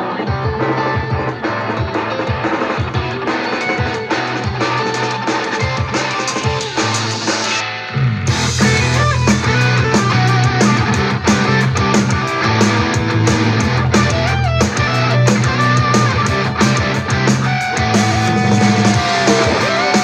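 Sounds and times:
drum kit: 0:00.0 - 0:20.0
electric guitar: 0:00.0 - 0:20.0
instrumental rock music: 0:00.0 - 0:20.0
deep electric bass line: 0:06.8 - 0:20.0.

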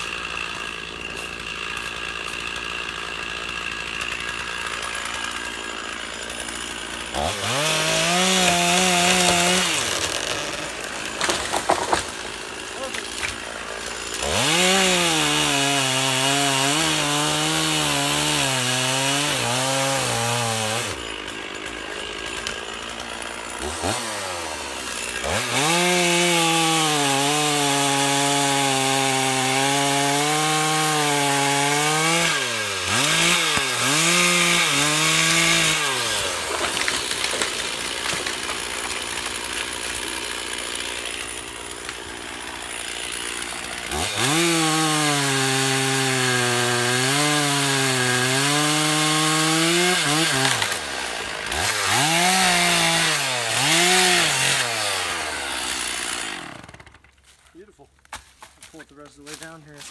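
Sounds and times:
chainsaw cutting wood: 0:00.0 - 0:59.9.

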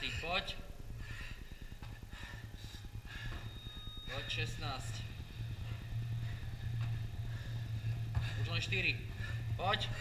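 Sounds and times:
man breathing hard: 0:00.0 - 0:04.0, 0:05.2 - 0:10.0
steady low hum: 0:00.0 - 0:10.0.

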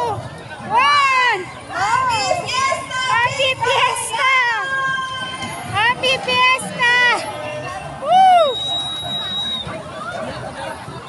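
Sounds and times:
crowd: 0:00.0 - 0:11.0.

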